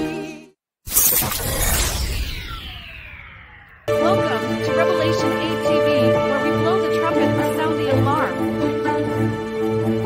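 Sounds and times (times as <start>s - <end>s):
loud ringing crash effect: 0.9s - 4.7s
sung music: 2.4s - 10.0s.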